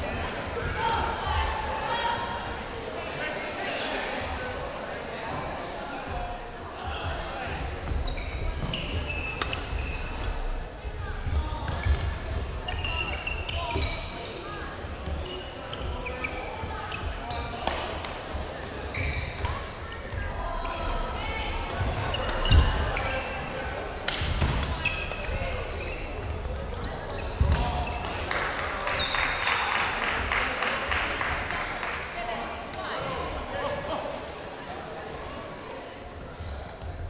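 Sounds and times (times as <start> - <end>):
murmur of voices: 0.0 - 37.0
sneaker squeaks: 7.8 - 18.1, 18.8 - 28.2, 28.9 - 29.6.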